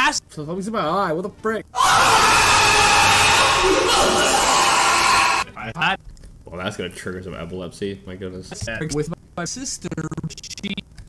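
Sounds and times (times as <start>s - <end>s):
buried voice: 1.8s - 5.5s.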